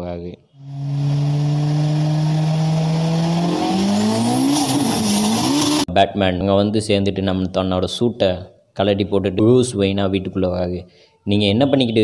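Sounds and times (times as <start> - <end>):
car engine revving: 0.6 - 5.9.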